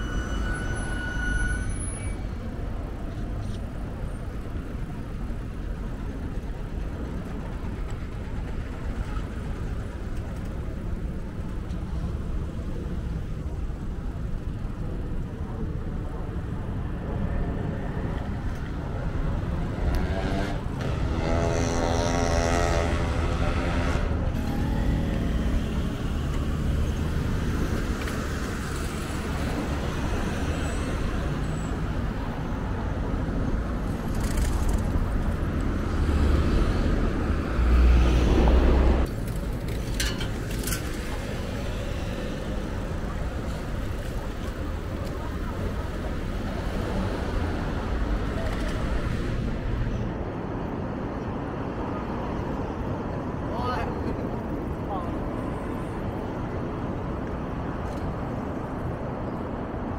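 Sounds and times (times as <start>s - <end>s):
road traffic rumble: 0.0s - 59.9s
loud vehicle passing: 18.8s - 32.4s, 33.8s - 39.1s.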